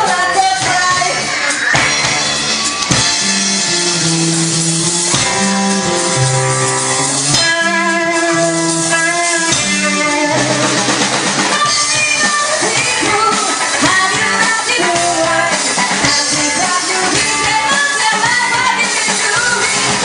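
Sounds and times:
bass guitar: 0.0s - 20.0s
drum kit: 0.0s - 20.0s
electric guitar: 0.0s - 20.0s.

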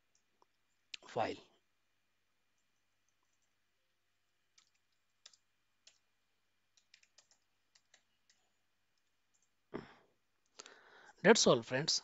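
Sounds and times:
keyboard typing: 4.5s - 6.1s, 6.7s - 9.6s.

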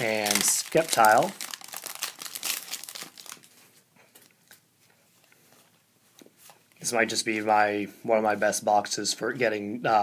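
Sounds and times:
foil wrapper crinkling: 0.0s - 3.8s.

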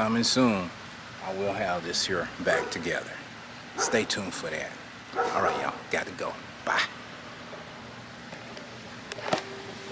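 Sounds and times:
faint constant hum: 0.0s - 9.9s
steady low hiss: 0.0s - 9.9s.

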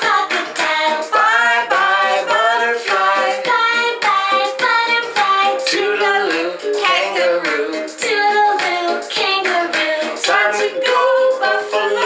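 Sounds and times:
woman singing children's song: 0.0s - 1.3s, 2.6s - 12.0s.

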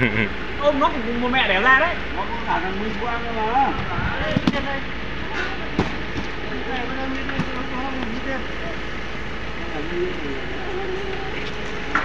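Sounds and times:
people talking: 0.0s - 8.9s, 9.5s - 12.0s
vehicle engine rumble: 0.0s - 12.0s.

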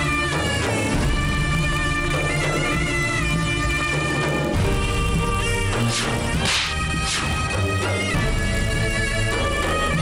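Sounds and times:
dramatic background score: 0.0s - 10.0s
swishing whooshes: 5.8s - 7.6s.

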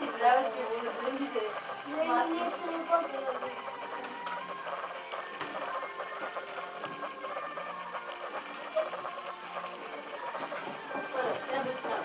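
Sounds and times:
background music with clicking texture: 0.0s - 12.0s.

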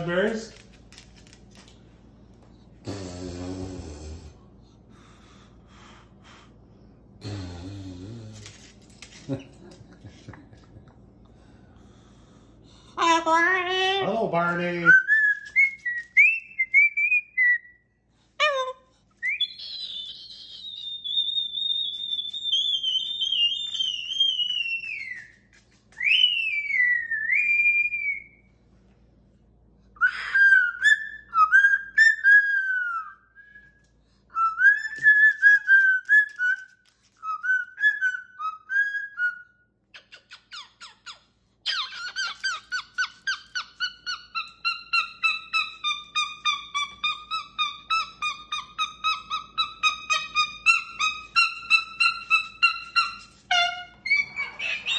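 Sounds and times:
cockatoo whistling: 19.2s - 25.4s, 26.0s - 28.4s, 30.0s - 41.0s, 41.7s - 54.9s.

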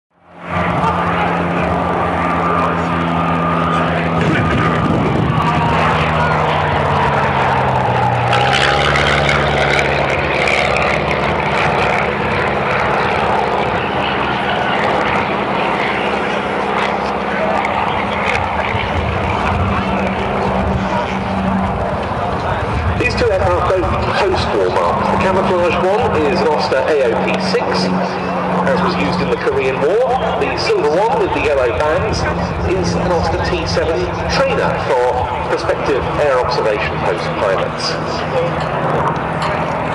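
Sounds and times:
propeller aircraft droning overhead: 0.1s - 39.9s.

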